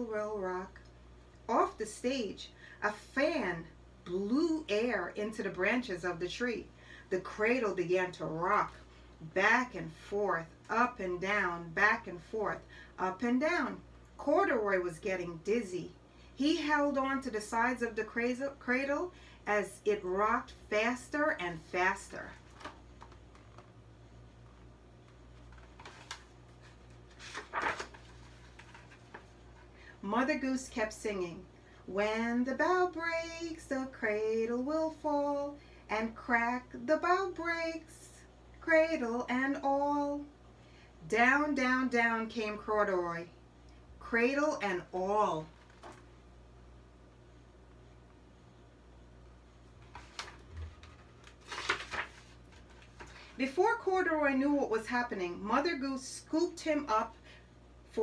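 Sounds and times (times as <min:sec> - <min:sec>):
low steady hum: 0:00.0 - 0:58.0
book pages rustling: 0:22.3 - 0:23.8, 0:24.4 - 0:29.7, 0:45.5 - 0:46.1, 0:49.6 - 0:53.4.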